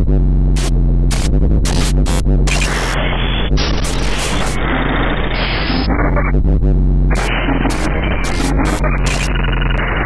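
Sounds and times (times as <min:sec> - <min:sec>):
low hum: 0:00.0 - 0:10.0
static-like electronic hiss: 0:00.6 - 0:06.3, 0:07.1 - 0:10.0.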